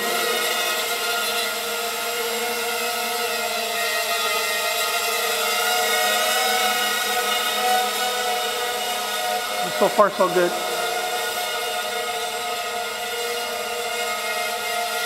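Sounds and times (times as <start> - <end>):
quadcopter motors whining: 0.0 - 15.0.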